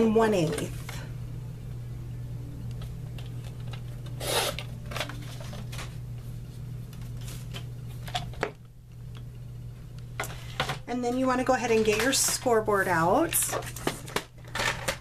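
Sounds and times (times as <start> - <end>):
steady low hum: 0.0 - 14.9.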